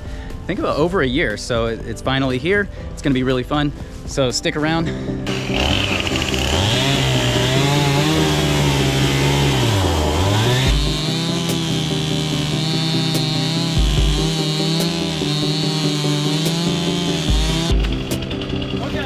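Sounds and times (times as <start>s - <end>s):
chainsaw cutting wood: 5.3s - 19.0s.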